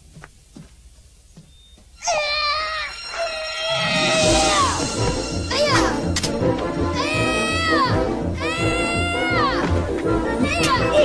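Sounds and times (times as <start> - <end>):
film score music: 1.9 - 11.0
children yelling: 2.0 - 6.0, 7.0 - 11.0.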